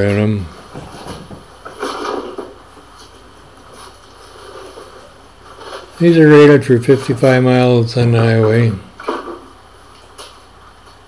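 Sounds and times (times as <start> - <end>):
cardboard scraping and rustling: 0.7 - 6.2.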